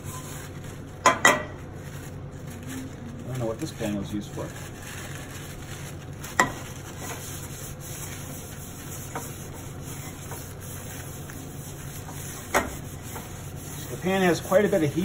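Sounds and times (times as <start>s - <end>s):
paper towel wiping a frying pan: 0.0s - 15.0s.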